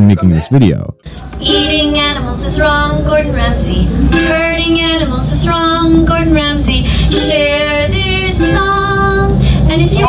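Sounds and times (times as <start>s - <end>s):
ukulele: 0.0s - 10.0s
woman singing long held notes: 1.1s - 10.0s.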